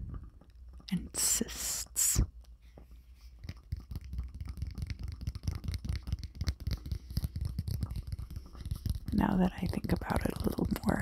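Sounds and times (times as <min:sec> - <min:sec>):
cards being shuffled: 0:02.7 - 0:10.8.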